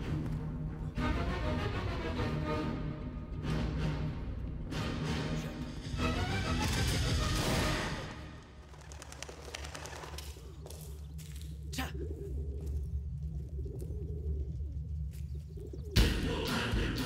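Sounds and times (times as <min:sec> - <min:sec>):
pigeons cooing: 0:11.9 - 0:16.2.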